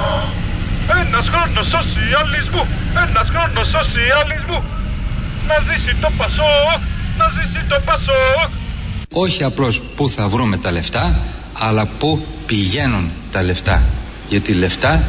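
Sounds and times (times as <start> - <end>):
man calling through a megaphone: 0.0 - 4.8, 5.5 - 12.0
car engine running: 0.0 - 9.1.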